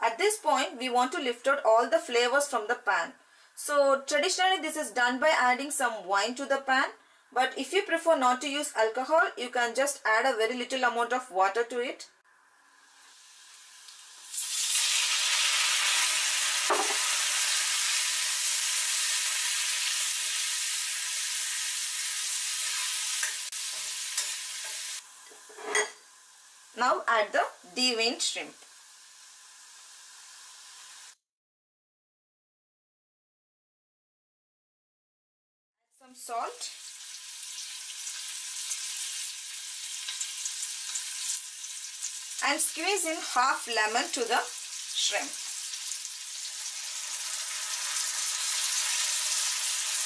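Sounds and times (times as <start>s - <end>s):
skillet sizzling: 12.3s - 31.2s, 36.1s - 50.0s
metal spoon clinking on pan: 23.2s - 26.0s.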